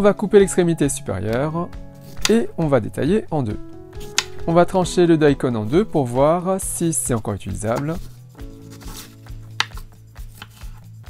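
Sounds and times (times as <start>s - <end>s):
soft background music: 0.0s - 11.0s
knife cutting radish on board: 2.0s - 2.4s, 7.7s - 10.8s.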